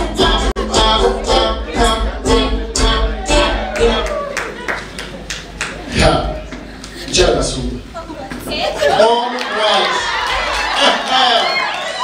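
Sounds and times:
people clapping in rhythm: 2.8s - 7.0s.

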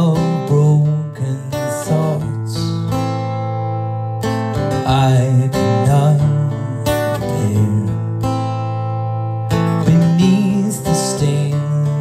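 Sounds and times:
man singing: 0.0s - 3.0s, 4.6s - 8.4s, 9.7s - 12.0s
acoustic guitar strumming: 0.0s - 12.0s.

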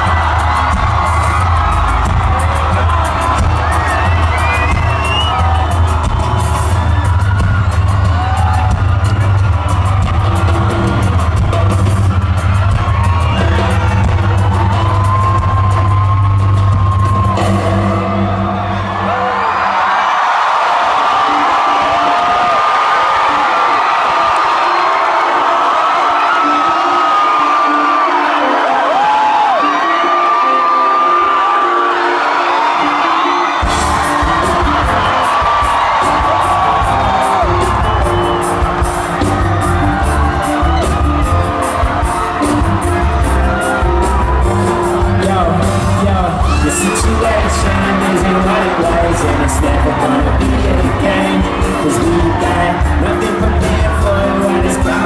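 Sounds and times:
concert music with deep bass: 0.0s - 55.0s
crowd cheering and screaming: 0.0s - 55.0s.

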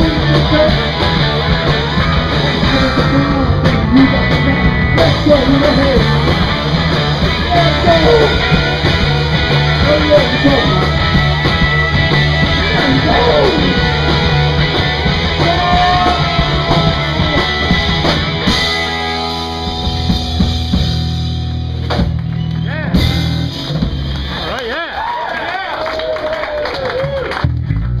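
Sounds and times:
live rock band playing: 0.0s - 25.2s.

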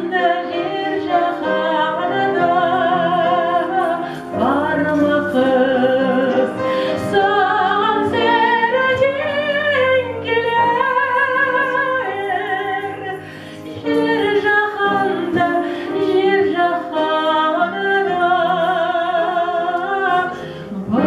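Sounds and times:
woman singing with vibrato: 0.0s - 13.2s, 13.8s - 21.0s
grand piano: 0.0s - 21.0s.

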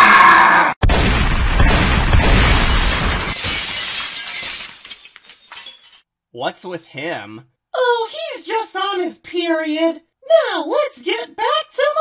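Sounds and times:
glass shattering: 2.1s - 6.1s
glass pieces clinking: 3.2s - 6.0s.

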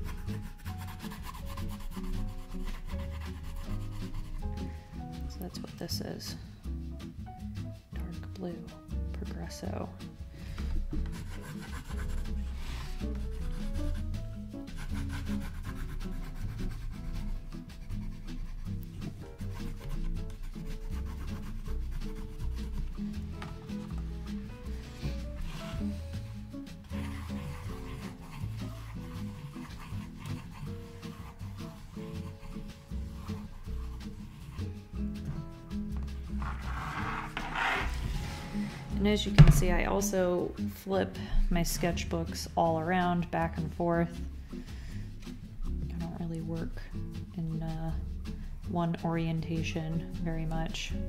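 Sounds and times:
pencil scribbling on paper: 0.0s - 4.8s, 10.9s - 35.2s, 36.2s - 38.6s
quiet background music: 0.0s - 51.0s
paper rustling: 36.3s - 38.8s.

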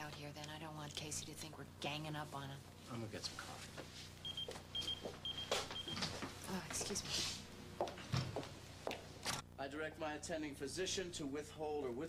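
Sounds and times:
pager beeping: 4.2s - 6.0s.

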